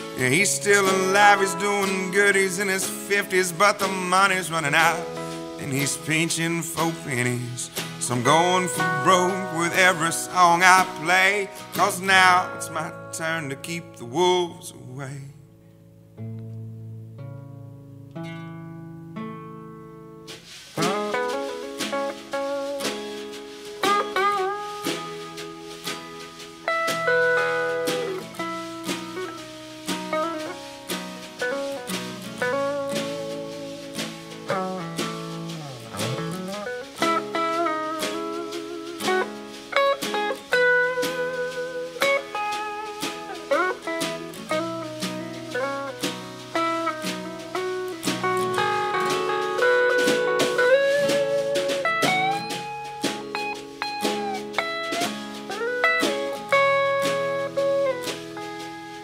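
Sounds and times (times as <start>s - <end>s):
electric guitar lead with bent notes: 0.0s - 14.4s, 16.0s - 59.0s
strummed rhythm guitar: 0.0s - 59.0s.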